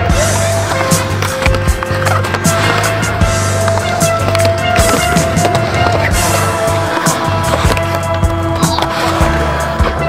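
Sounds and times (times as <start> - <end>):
music with held tones: 0.0 - 10.0
skateboard wheels rolling on concrete: 0.0 - 10.0
skateboard clacks: 0.6 - 10.0.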